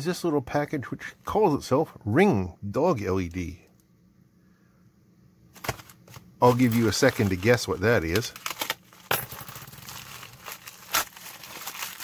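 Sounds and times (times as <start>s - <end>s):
plastic bag crinkling: 5.6s - 12.0s.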